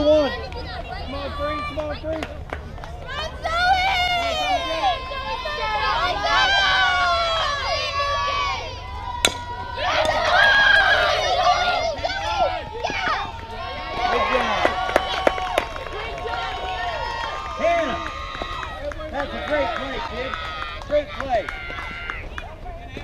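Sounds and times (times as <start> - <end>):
people shouting and cheering: 0.0 - 23.0
bat hitting softball: 9.1 - 11.1.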